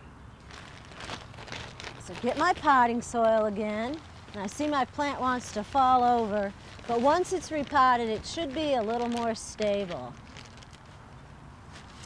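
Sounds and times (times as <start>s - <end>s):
plastic bag rustling: 0.4s - 11.1s, 11.7s - 12.0s.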